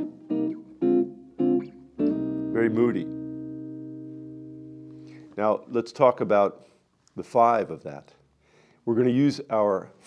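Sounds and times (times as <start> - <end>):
electric guitar chord ringing: 0.0 - 5.2.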